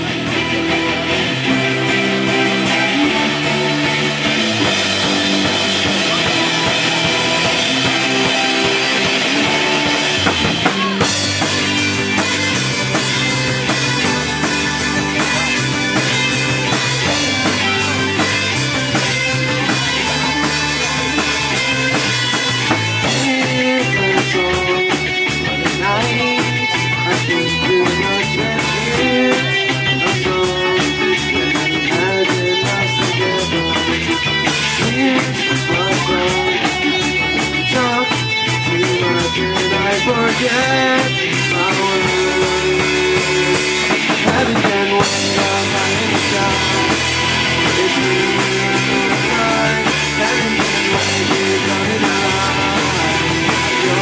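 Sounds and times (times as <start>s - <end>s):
drum kit: 0.0s - 54.0s
electric guitars: 0.0s - 54.0s.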